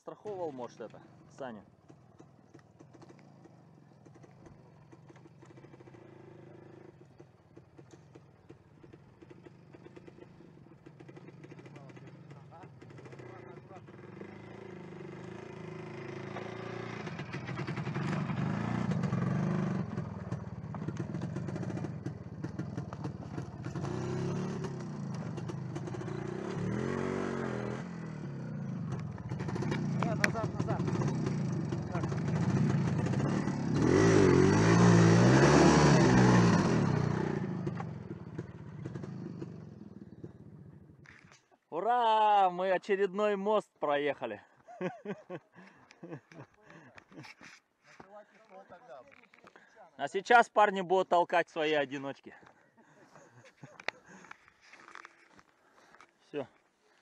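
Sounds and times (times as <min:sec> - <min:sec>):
motorcycle engine revving: 0:00.9 - 0:41.3, 0:52.8 - 0:56.0.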